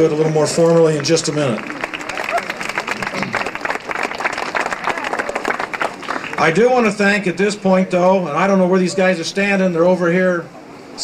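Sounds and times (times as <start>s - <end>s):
audience applauding: 0.4s - 6.6s.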